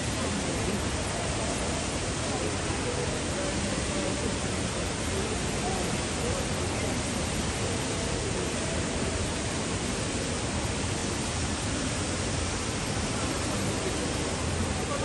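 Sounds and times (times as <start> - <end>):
faint indistinct voices: 0.0 - 15.0
indoor crowd background noise: 0.0 - 15.0.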